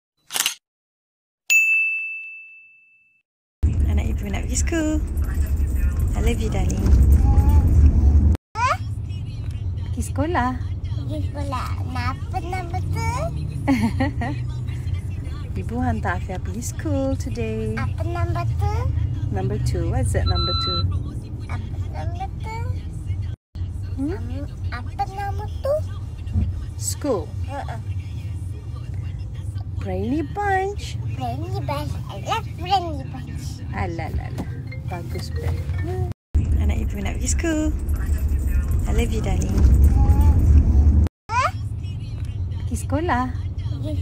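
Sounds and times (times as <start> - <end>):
high bell ding: 1.5 - 3.2
low rumble inside moving car: 3.6 - 44.0.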